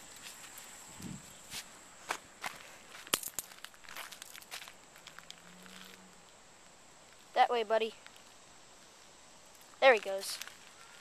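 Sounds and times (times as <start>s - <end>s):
footsteps on grass and dirt: 0.0s - 6.0s, 9.7s - 11.0s.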